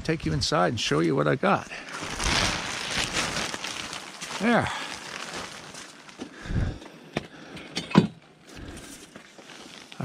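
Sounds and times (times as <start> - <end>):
plastic tarp rustling: 1.6 - 6.6, 8.9 - 10.0.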